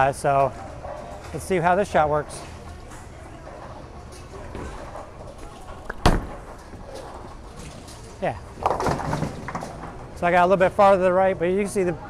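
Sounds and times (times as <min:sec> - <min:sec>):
bowling alley hum: 0:00.0 - 0:12.0
bowling pins crash: 0:05.7 - 0:07.3, 0:08.5 - 0:10.0.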